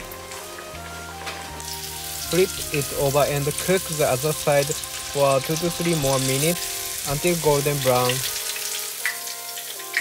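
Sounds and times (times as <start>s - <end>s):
hot oil sizzling: 0.0s - 10.0s
oil crackles: 0.0s - 10.0s
soft background music: 0.0s - 10.0s.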